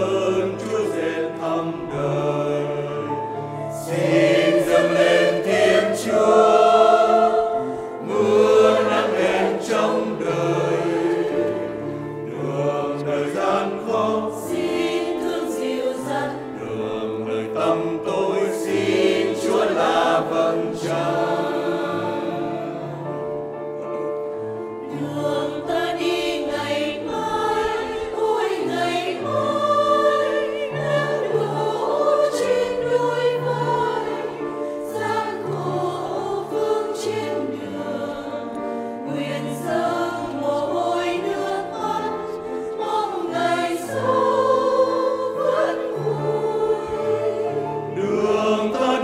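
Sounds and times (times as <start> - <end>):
mixed choir singing: 0.0 - 49.0.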